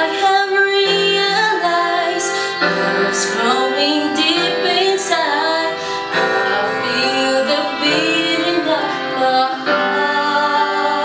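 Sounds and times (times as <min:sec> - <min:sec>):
woman singing: 0:00.0 - 0:11.0.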